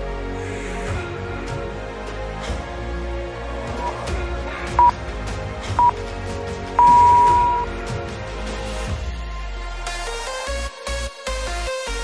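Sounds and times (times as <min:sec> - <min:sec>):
background music: 0:00.0 - 0:12.0
short electronic beeps: 0:06.8 - 0:07.7.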